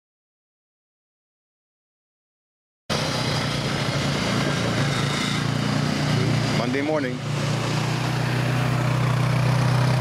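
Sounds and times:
quad bike engine running: 0:02.9 - 0:10.0.

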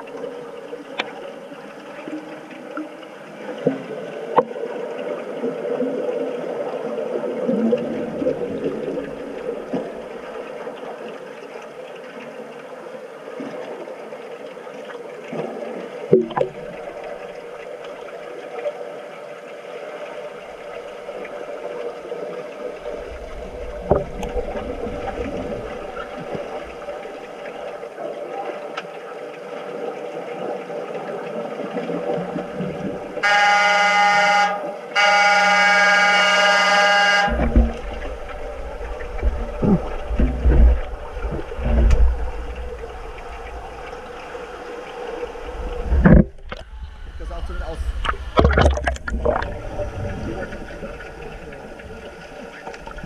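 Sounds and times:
muffled churning water and bubbles: 0:00.0 - 0:53.0
sharp underwater knocks: 0:16.1 - 0:16.9, 0:23.8 - 0:26.4, 0:37.3 - 0:38.4, 0:39.1 - 0:43.2, 0:45.8 - 0:46.7, 0:48.0 - 0:49.6.

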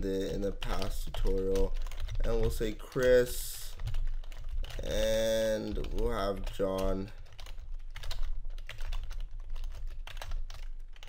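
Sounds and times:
computer keyboard typing: 0:00.0 - 0:11.0.

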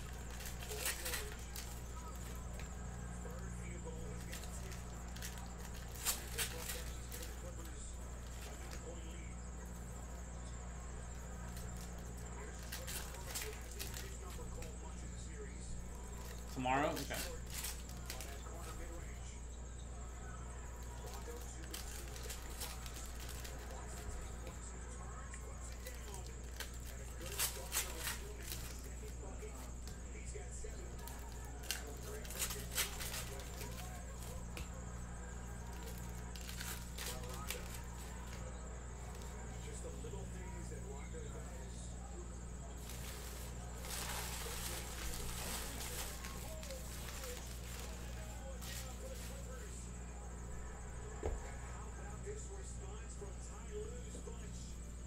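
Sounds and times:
cards and packs rustling: 0:00.0 - 0:19.3, 0:20.4 - 0:41.6, 0:42.4 - 0:50.0
steady low hum: 0:00.0 - 0:55.0.

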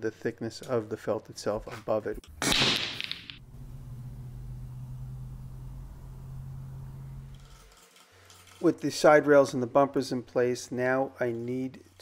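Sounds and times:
steady low hum: 0:03.4 - 0:07.8.

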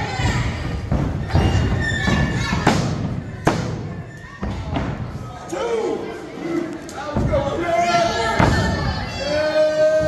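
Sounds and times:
voices in hall: 0:00.0 - 0:10.0.

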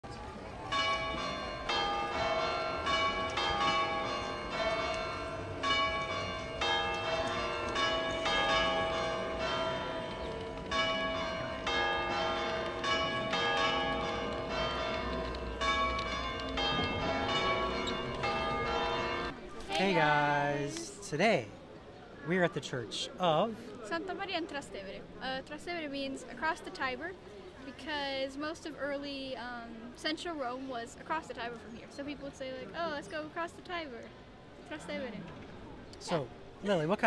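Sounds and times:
church bells pealing: 0:00.7 - 0:19.4.

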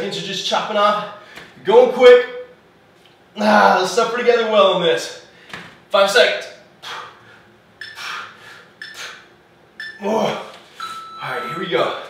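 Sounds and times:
short electronic timer beeps: 0:07.8 - 0:08.0, 0:09.8 - 0:10.0, 0:10.8 - 0:11.6.

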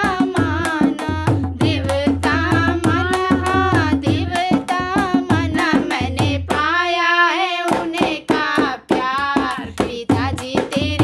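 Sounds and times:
hand percussion: 0:00.0 - 0:11.0
person singing folk song: 0:00.0 - 0:11.0.

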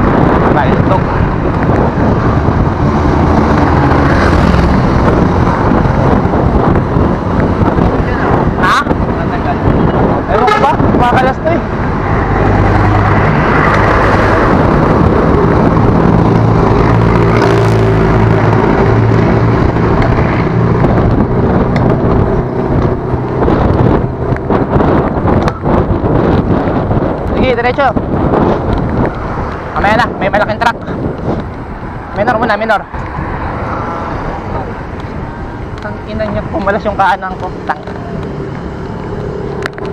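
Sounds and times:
road traffic: 0:00.0 - 0:39.9
rushing wind: 0:00.0 - 0:39.9
vehicle engine humming: 0:00.0 - 0:39.9.

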